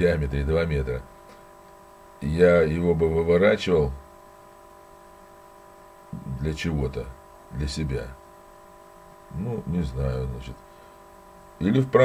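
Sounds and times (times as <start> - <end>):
faint electrical hum: 0.0 - 12.0
low background hiss: 0.0 - 12.0.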